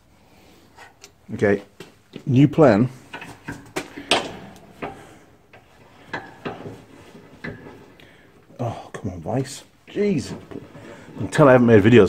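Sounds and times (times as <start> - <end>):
metal clicks and knocks: 3.0 - 8.6.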